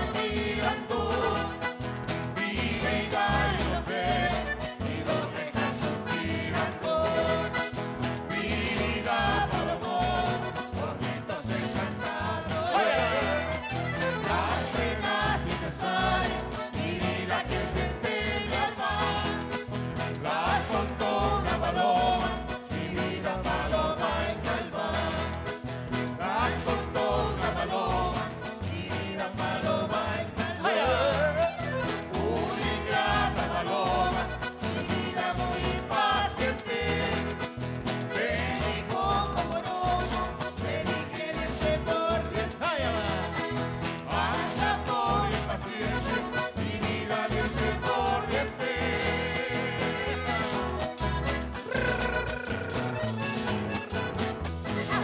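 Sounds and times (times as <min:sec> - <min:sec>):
accordion: 0:00.0 - 0:55.0
group singing: 0:00.0 - 0:55.0
strummed acoustic guitars: 0:00.0 - 0:55.0.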